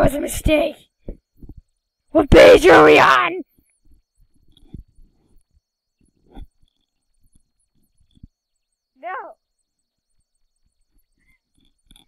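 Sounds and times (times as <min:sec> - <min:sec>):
faint clicks and soft bumps: 0:03.6 - 0:08.5.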